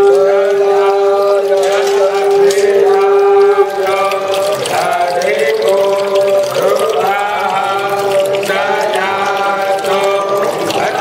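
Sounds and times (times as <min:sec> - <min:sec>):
milk splashing into metal basin: 0:00.0 - 0:11.0
voices chanting held notes: 0:00.0 - 0:11.0.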